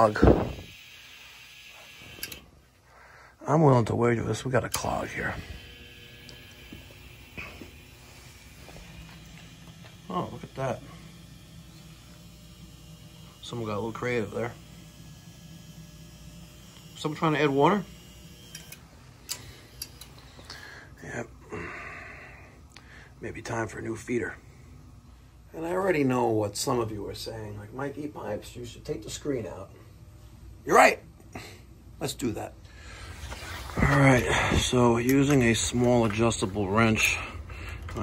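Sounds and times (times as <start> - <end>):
room noise: 0.0 - 38.0.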